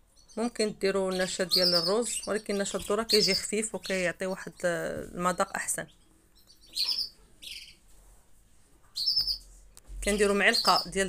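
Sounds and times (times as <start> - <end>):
small bird chirping: 0.0 - 8.0, 8.9 - 11.0.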